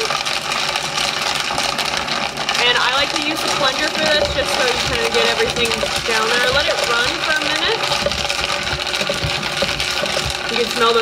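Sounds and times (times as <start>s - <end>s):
blender motor running: 0.0s - 11.0s.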